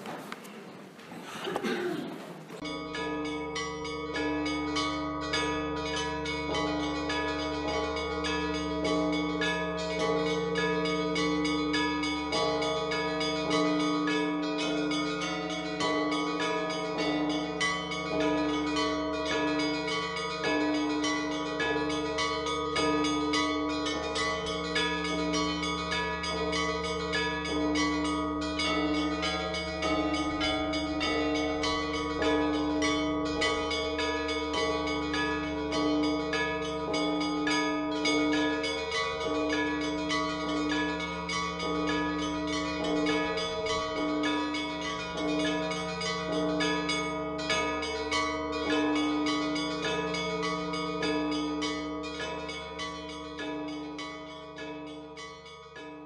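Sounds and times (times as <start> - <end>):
large bells humming: 0.0 - 56.0
small church bells striking: 2.6 - 56.0.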